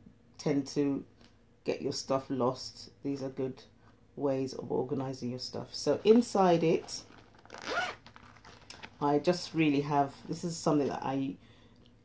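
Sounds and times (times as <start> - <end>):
zip pulled open: 6.8 - 8.9.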